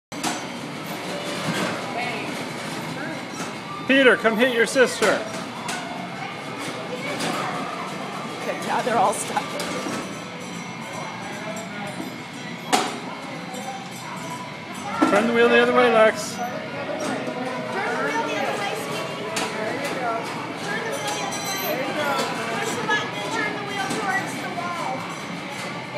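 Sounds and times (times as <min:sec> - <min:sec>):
bumper cars rolling with motor noise: 0:00.2 - 0:25.9
faint voices: 0:00.6 - 0:25.9.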